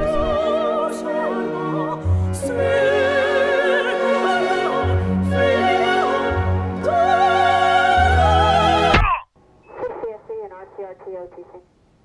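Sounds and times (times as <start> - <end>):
faint radio hiss: 9.4 - 12.0
voice over two-way radio: 9.8 - 11.7.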